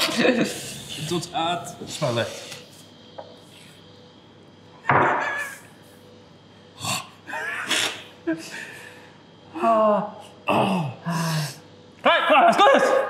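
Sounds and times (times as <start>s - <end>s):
laughter: 7.3s - 8.7s, 12.3s - 13.0s.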